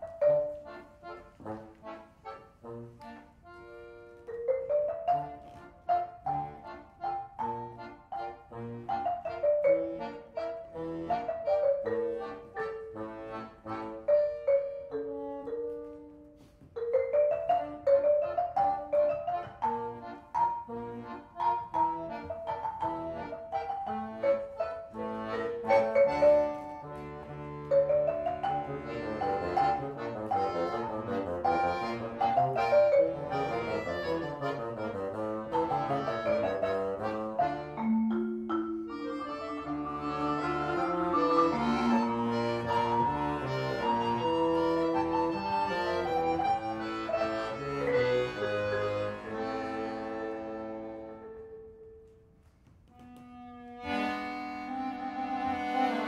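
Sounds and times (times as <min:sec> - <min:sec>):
marimba notes: 0:00.0 - 0:01.3, 0:03.6 - 0:52.1
bassoon tones: 0:00.0 - 0:51.9
accordion tones: 0:00.0 - 0:56.0.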